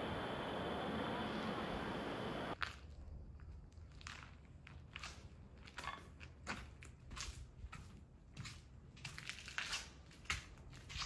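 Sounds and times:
footsteps crunching over rubble: 2.6s - 11.0s.

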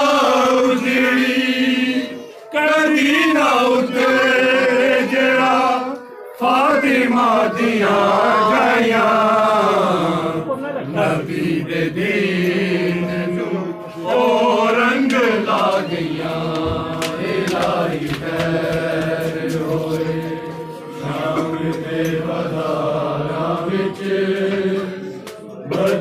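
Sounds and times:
men chanting a lament: 0.0s - 26.0s.

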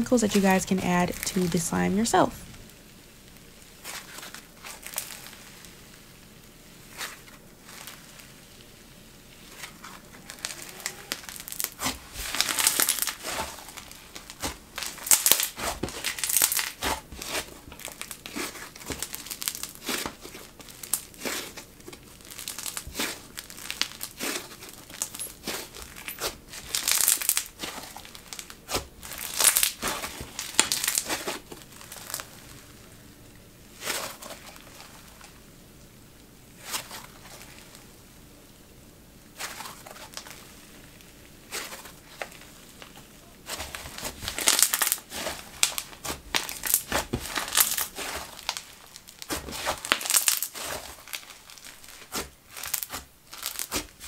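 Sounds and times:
slime crackling and popping: 0.2s - 35.5s, 36.5s - 38.0s, 39.2s - 54.0s.

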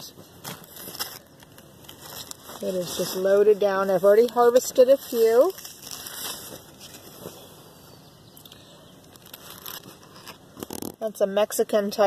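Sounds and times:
crackles: 0.0s - 7.5s, 8.4s - 11.2s
large leaves rustling and scraping: 0.0s - 7.8s, 9.0s - 11.1s.

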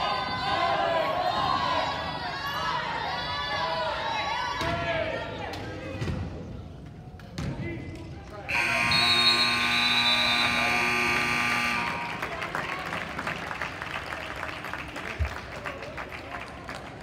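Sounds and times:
indoor court noise: 0.0s - 17.0s
scoreboard buzzer: 8.5s - 12.2s.

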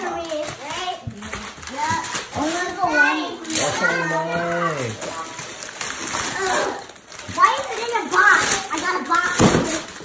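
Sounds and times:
wrapping paper tearing and crinkling: 0.0s - 10.0s
faint voices: 0.2s - 5.6s.

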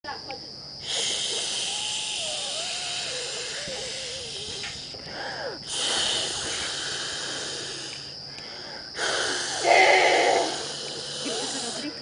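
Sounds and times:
person making breathy hiss: 0.8s - 12.0s.

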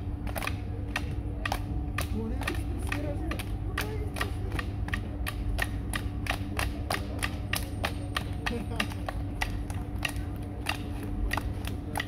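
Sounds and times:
steady low hum: 0.0s - 12.0s
group clapping in rhythm: 0.2s - 12.0s.

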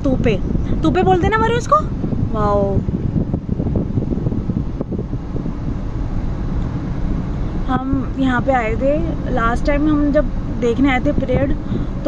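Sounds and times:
road and engine noise: 0.0s - 12.0s
wind buffeting microphone: 0.0s - 12.0s.

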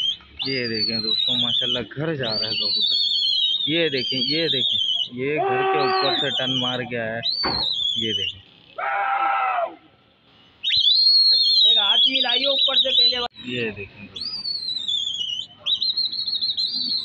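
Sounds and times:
high warbling whistles: 0.0s - 8.4s, 10.6s - 17.0s
long shouted calls: 2.5s - 10.0s.

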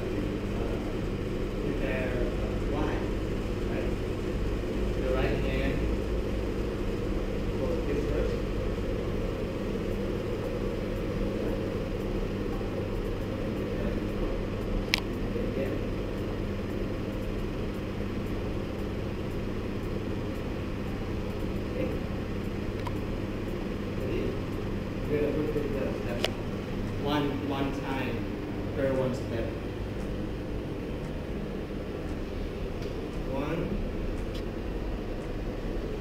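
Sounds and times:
mechanical hum and rumble: 0.0s - 36.0s.

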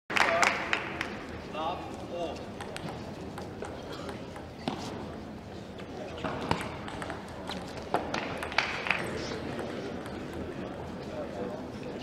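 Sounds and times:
table tennis ball bouncing: 2.5s - 4.8s, 6.2s - 10.9s.

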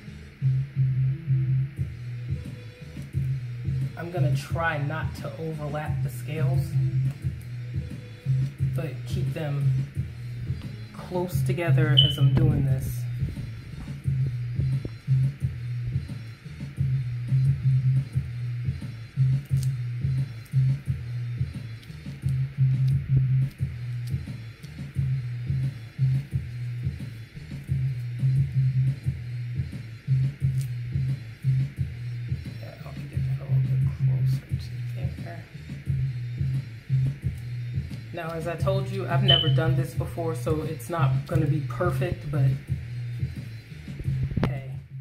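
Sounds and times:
repeating bass line: 6.3s - 27.1s, 38.6s - 40.1s.

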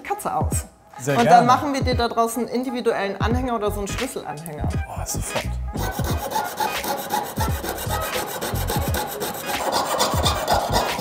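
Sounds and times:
piercing saw cutting strokes: 5.8s - 11.0s.

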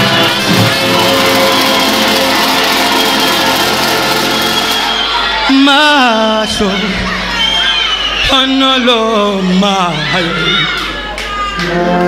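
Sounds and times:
brass band playing gospel music: 0.0s - 6.4s.

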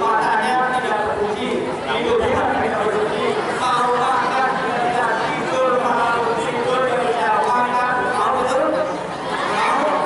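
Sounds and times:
crowd chatter: 0.0s - 10.0s
person speaking through loudspeaker: 0.0s - 10.0s.

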